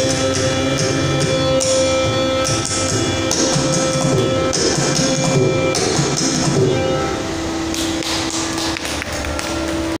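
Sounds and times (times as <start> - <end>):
violin: 0.0 - 10.0.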